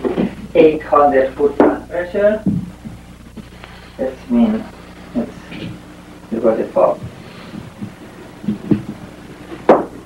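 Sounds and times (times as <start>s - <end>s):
low hum: 0.0s - 10.0s
knocks: 7.0s - 10.0s.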